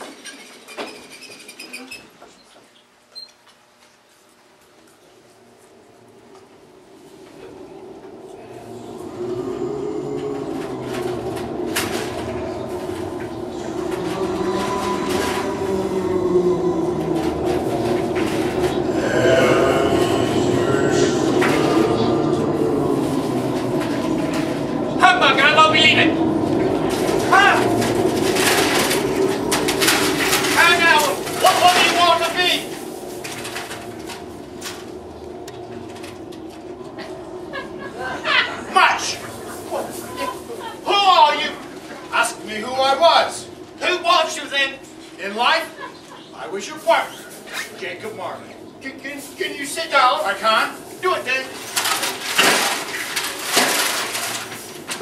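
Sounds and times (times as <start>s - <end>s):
low drone: 5.4s - 46.4s
moaning voices: 5.5s - 55.0s.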